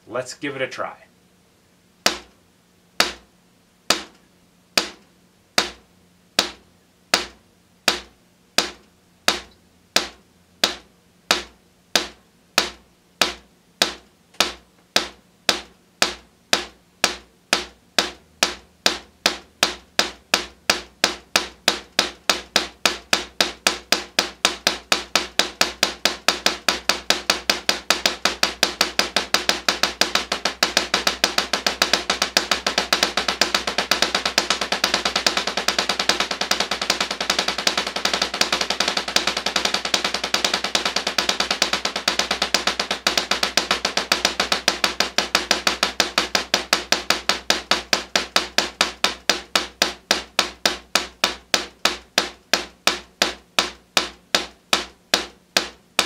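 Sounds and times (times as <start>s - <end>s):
drumsticks on practice pad: 2.0s - 2.4s, 3.0s - 56.0s.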